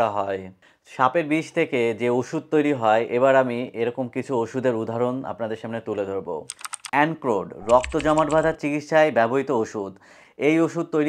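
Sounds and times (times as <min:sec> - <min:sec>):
man narrating: 0:00.0 - 0:11.0
keyboard typing clicks: 0:06.5 - 0:07.0, 0:07.6 - 0:08.6.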